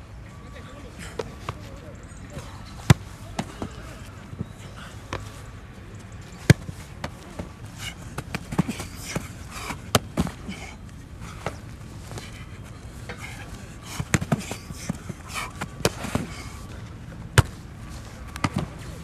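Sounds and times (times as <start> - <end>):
footballs being kicked: 6.3 - 7.6, 14.0 - 16.4, 17.3 - 17.7, 18.3 - 19.0
ball caught by gloves: 6.4 - 7.2, 17.3 - 17.6, 18.3 - 18.8.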